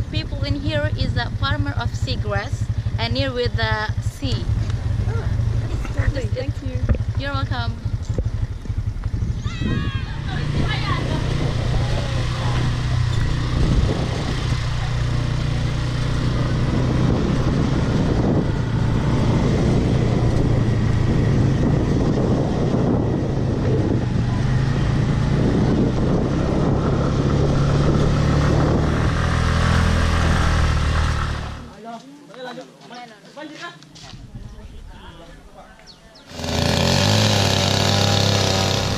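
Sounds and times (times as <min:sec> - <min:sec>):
motor scooter engine running: 0:00.0 - 0:31.7, 0:36.3 - 0:38.9
wind rush on microphone: 0:06.4 - 0:15.4, 0:16.2 - 0:30.7
quiet street ambience: 0:29.5 - 0:36.9.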